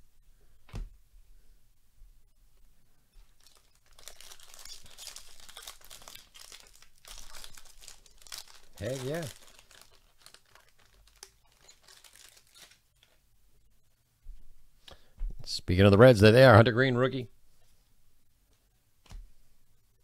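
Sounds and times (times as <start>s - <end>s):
foil wrapper tearing and crinkling: 3.3s - 12.8s.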